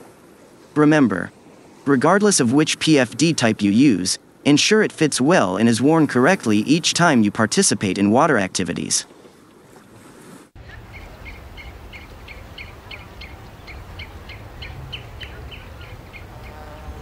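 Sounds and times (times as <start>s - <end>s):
bird chirping quickly: 10.6s - 16.9s
low wind-like rumble: 10.6s - 17.0s.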